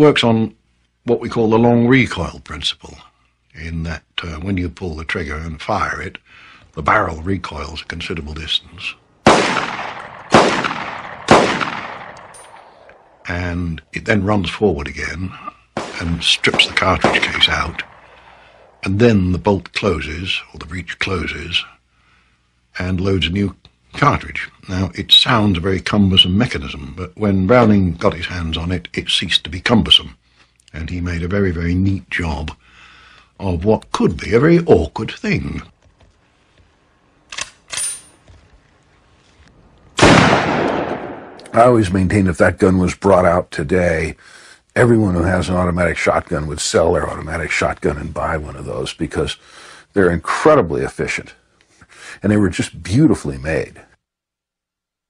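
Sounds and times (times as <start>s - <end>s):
shotgun shots: 9.2s - 13.2s, 15.8s - 18.8s, 40.0s - 41.6s
shotgun action clicks: 9.4s - 13.1s, 37.3s - 37.9s.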